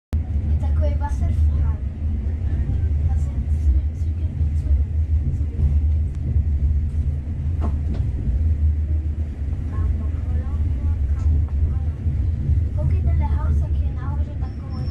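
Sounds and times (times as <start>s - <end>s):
train rumble from inside carriage: 0.2s - 14.9s.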